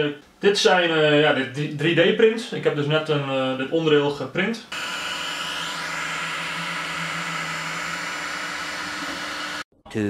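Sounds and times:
fan and motor tones: 0:04.7 - 0:09.6.

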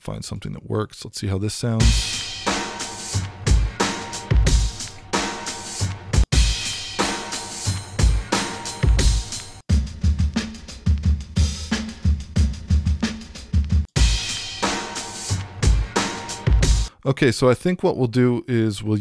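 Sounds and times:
hip-hop drum loops: 0:01.8 - 0:16.9.

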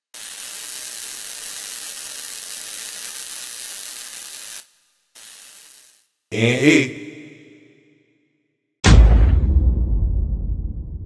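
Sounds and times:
steady hiss: 0:00.0 - 0:06.8.

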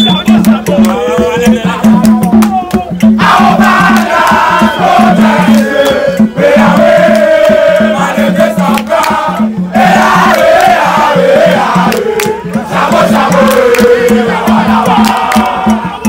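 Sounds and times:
steady beat: 0:00.0 - 0:16.0
crowd singing gospel song: 0:03.0 - 0:16.0.

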